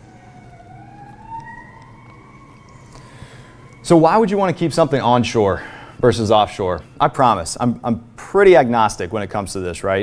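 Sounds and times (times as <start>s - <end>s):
faint wailing siren: 0.0s - 5.4s.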